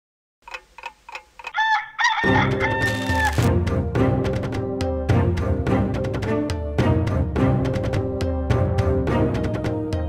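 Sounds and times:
clock-like ticks: 0.4s - 1.6s
rooster crowing: 1.5s - 3.5s.

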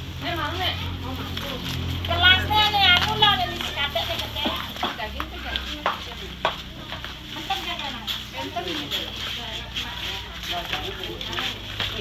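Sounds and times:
faint voices: 0.2s - 12.0s.

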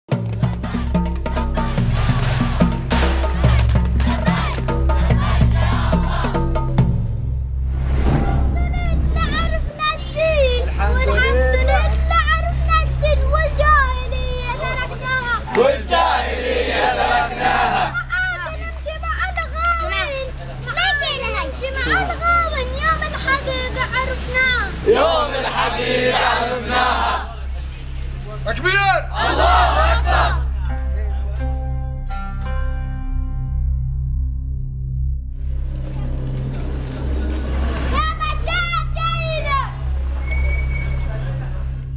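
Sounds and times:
noise of a group of people: 0.2s - 31.9s, 35.6s - 41.9s
child chanting: 4.1s - 6.3s, 8.6s - 16.3s, 17.0s - 27.3s, 37.9s - 39.8s.

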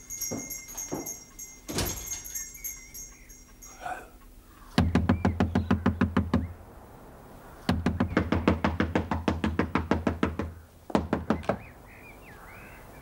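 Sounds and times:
rapid pounding on wooden door: 7.7s - 11.7s.

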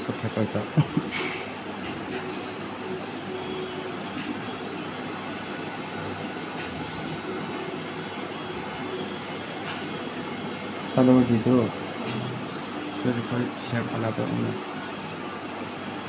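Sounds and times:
tattoo machine buzzing: 4.8s - 12.3s.

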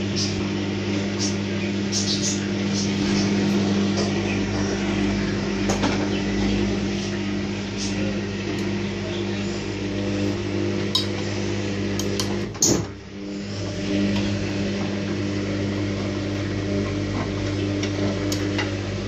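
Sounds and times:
washing machine motor humming: 0.0s - 19.0s.

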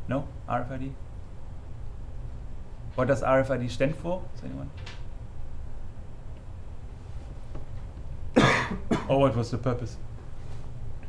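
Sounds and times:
man coughing: 8.4s - 9.2s.

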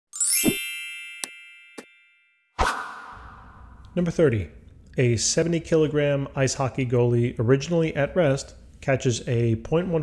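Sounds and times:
bright ringing chime: 0.1s - 2.6s.

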